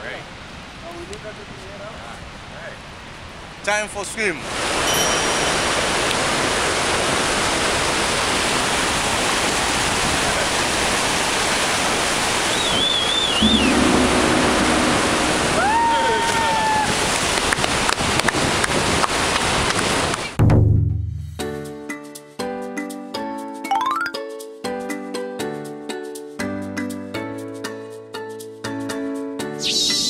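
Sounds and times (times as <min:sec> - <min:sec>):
waterfall roaring: 0:04.5 - 0:12.6, 0:13.3 - 0:20.2
people shouting: 0:15.5 - 0:17.0.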